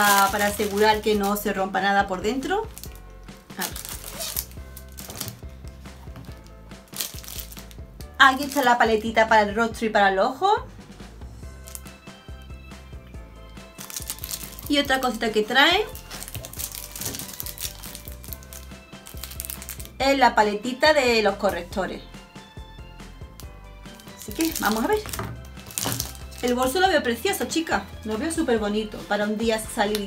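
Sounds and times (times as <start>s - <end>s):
plastic packaging rustling: 0.0s - 1.6s, 2.3s - 8.8s, 11.6s - 12.0s, 13.7s - 20.0s, 23.4s - 26.9s
soft background music: 0.0s - 30.0s.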